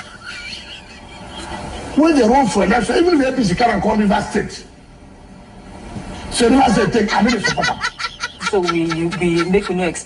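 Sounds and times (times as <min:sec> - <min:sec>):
road noise inside a car: 0:00.0 - 0:10.0.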